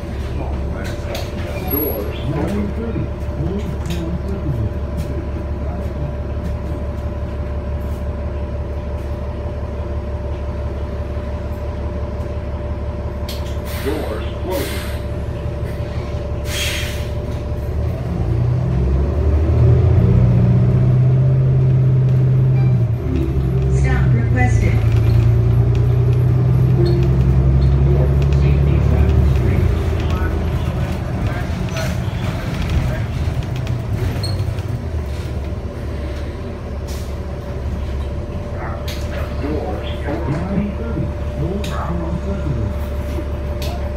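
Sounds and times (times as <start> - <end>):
bus diesel engine: 0.0 - 43.9
air hissing: 16.4 - 17.2.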